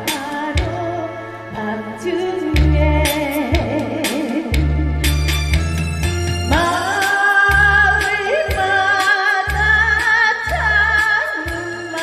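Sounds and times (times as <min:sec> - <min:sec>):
woman singing with vibrato: 0:00.0 - 0:05.1, 0:06.5 - 0:12.0
instrumental accompaniment: 0:00.0 - 0:12.0.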